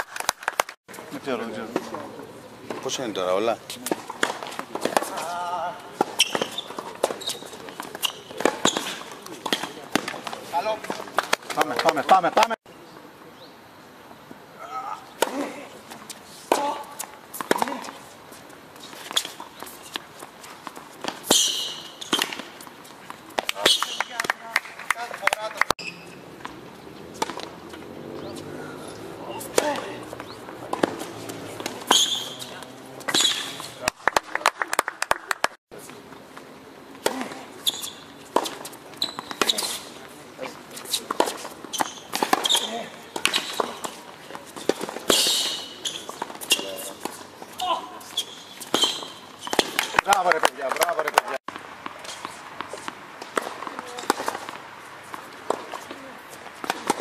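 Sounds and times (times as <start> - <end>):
tennis ball bouncing on court: 25.2 - 33.7, 41.0 - 44.0, 48.0 - 57.0
tennis racket hitting ball: 26.4 - 28.5, 29.4 - 33.7, 40.9 - 44.0, 56.6 - 57.0.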